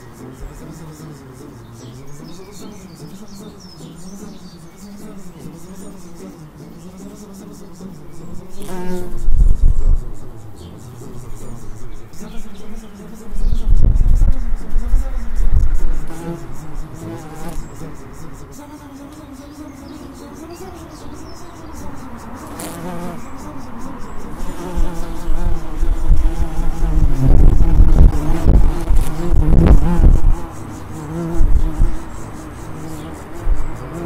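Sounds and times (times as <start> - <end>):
bumblebee buzzing: 1.6 - 34.0.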